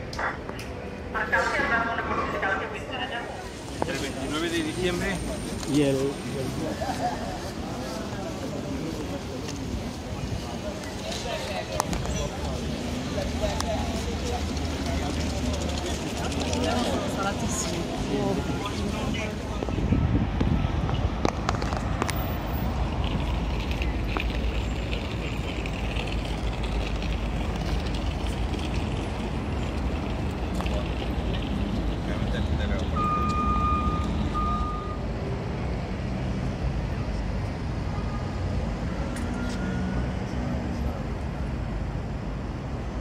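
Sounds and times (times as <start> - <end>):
passers-by talking: 0.0 - 35.0
traffic rumble: 0.0 - 43.0
high electronic beep: 33.0 - 35.0.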